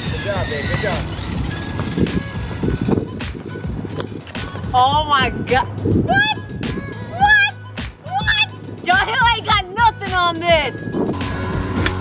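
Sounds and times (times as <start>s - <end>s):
skateboard wheels rumbling on asphalt: 0.0s - 5.1s.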